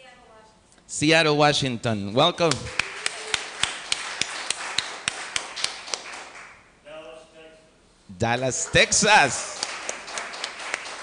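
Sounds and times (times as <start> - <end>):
rhythmic hand clapping: 2.5 - 6.6, 8.4 - 11.0
scattered applause: 2.5 - 6.6, 8.5 - 11.0.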